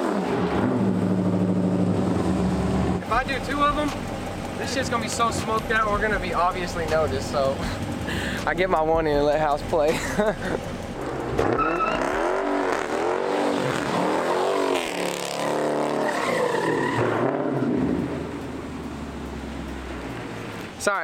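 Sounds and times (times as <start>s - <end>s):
car engine revving: 0.0s - 21.0s
tyres screeching: 11.3s - 12.8s, 13.6s - 17.8s.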